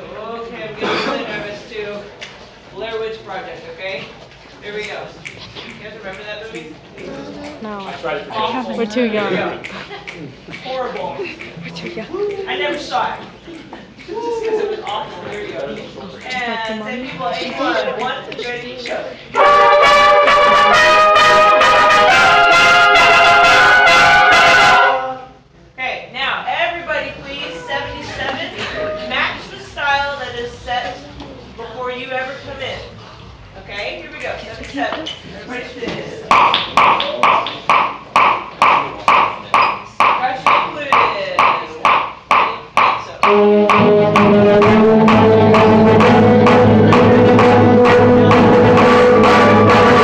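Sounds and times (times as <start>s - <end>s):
concert band playing: 19.4s - 25.2s, 43.2s - 50.0s
sharp count-off beat: 19.4s - 25.2s, 36.3s - 50.0s
wind instruments holding chord: 19.4s - 25.3s, 43.2s - 50.0s.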